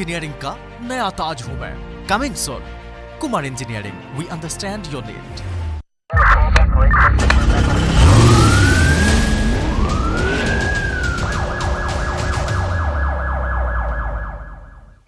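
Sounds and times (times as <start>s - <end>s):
deep bass rumble: 6.5s - 14.6s
police siren wailing: 7.5s - 15.0s.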